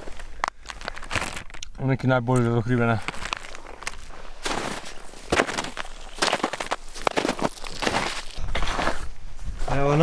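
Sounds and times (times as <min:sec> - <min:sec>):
footsteps crunching in snow: 0:00.0 - 0:01.6, 0:02.8 - 0:10.0.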